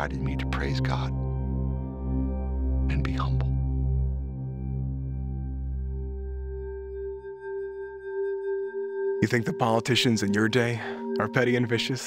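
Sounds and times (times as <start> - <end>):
deep bass drone: 0.0 - 7.1
ambient pad with held tones: 0.0 - 12.0.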